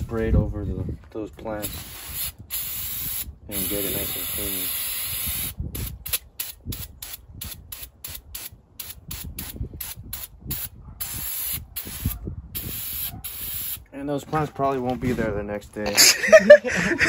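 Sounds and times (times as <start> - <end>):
aerosol can spraying: 1.6 - 13.8.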